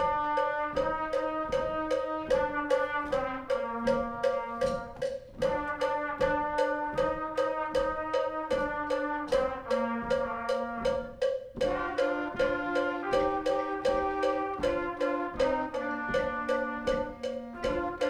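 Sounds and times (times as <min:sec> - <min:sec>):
brass and woodwind chords: 0:00.0 - 0:18.0
steady drum beat: 0:00.0 - 0:18.0.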